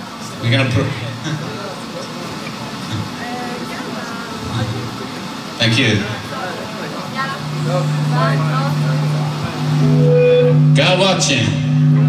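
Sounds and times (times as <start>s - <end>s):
voices talking: 0.2s - 12.0s
low tone from amplified instruments: 2.7s - 12.0s.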